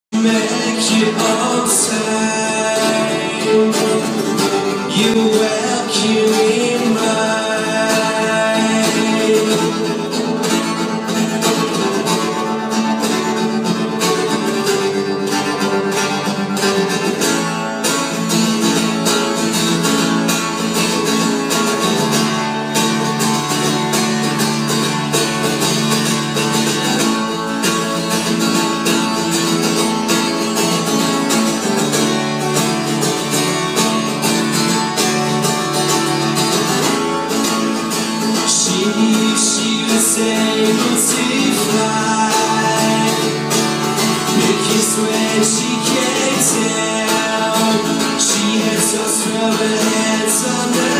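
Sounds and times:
acoustic guitar strumming: 0.1s - 50.9s.

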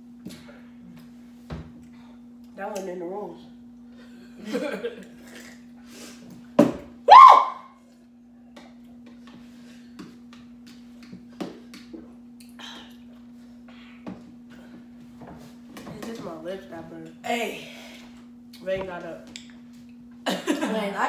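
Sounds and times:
steady low hum: 0.0s - 21.0s
loud voiced cry rising in pitch: 7.1s - 7.7s.

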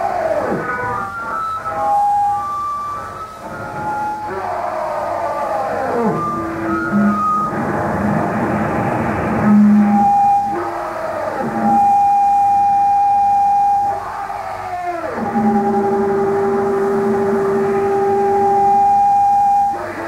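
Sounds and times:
harsh electronic noise tones: 0.0s - 20.0s.

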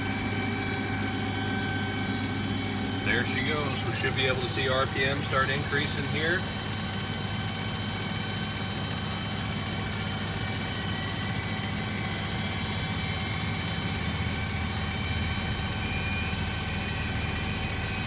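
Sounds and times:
faint engine whine: 0.0s - 18.0s
jet engine turning over hum: 0.0s - 18.0s.

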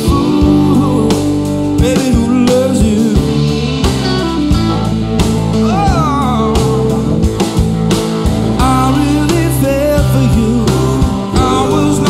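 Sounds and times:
drum hits: 0.0s - 12.0s
live rock band playing: 0.0s - 12.0s.

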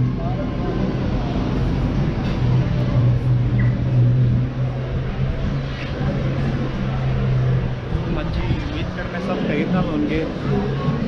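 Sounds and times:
road noise: 0.0s - 11.0s
vehicle engine humming: 0.0s - 11.0s.

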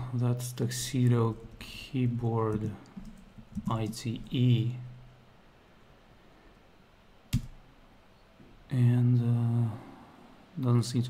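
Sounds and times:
computer keyboard keystroke: 7.3s - 7.6s.

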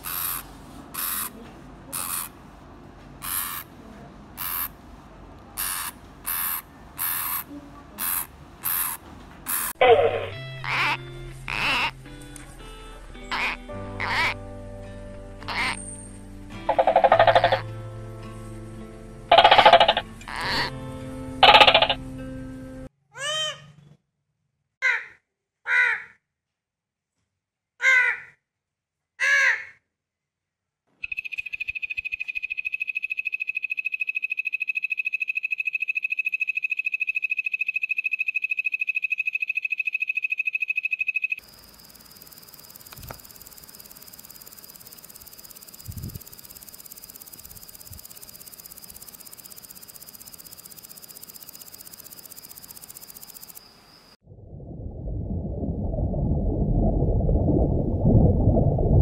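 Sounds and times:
macaw squawks: 0.0s - 0.4s, 1.0s - 2.3s, 3.2s - 3.7s, 4.4s - 4.7s, 5.6s - 12.0s, 13.3s - 14.4s, 15.4s - 15.8s, 16.7s - 17.6s, 19.3s - 20.8s, 21.4s - 22.0s
background music: 9.8s - 22.9s
high insect trill: 21.4s - 22.0s, 31.0s - 54.2s.

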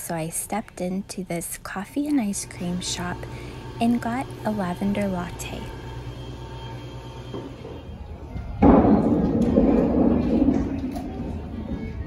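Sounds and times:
low steady hum: 0.0s - 11.9s.

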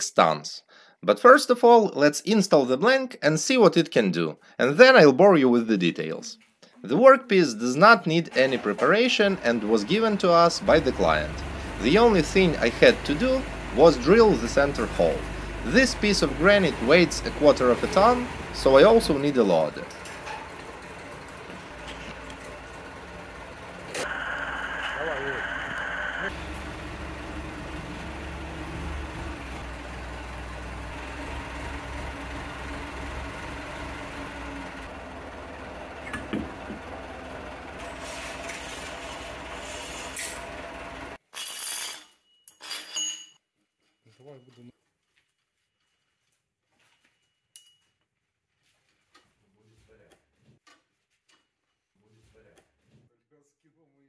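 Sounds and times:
workshop din: 7.8s - 44.8s
electric hoist running: 8.5s - 41.2s
light clinks: 47.3s - 48.0s.

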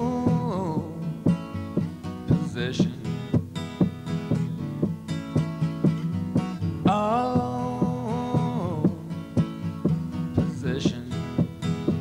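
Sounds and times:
person singing: 0.0s - 1.1s, 6.8s - 9.1s
acoustic guitar strumming: 0.0s - 12.0s.

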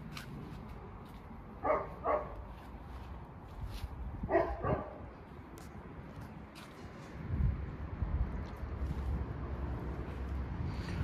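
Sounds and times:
dog barking: 1.6s - 2.4s, 4.3s - 5.0s.

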